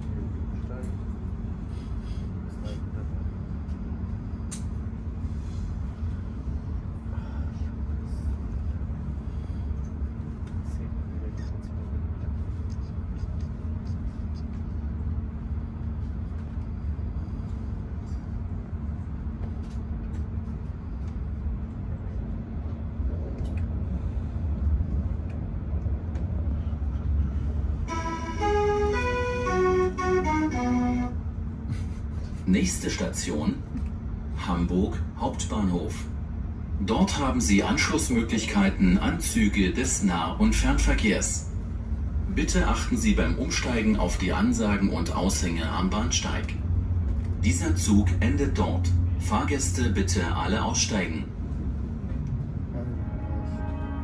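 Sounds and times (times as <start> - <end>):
train rumbling over tracks: 0.0 - 54.0.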